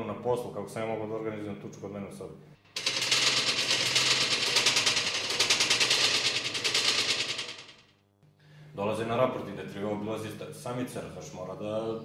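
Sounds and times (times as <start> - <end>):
fast rattle of sharp clicks: 2.7 - 7.8.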